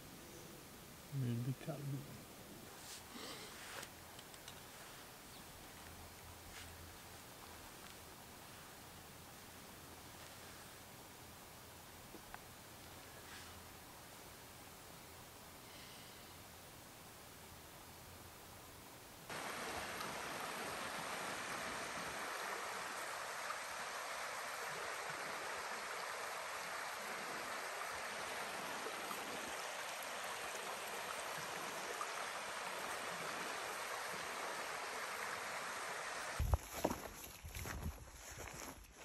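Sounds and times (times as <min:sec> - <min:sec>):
stream running over rocks: 0:19.3 - 0:36.5.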